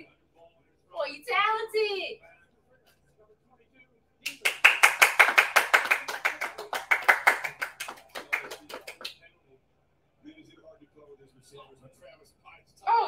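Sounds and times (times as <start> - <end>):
rapid handclapping: 4.3 - 9.2.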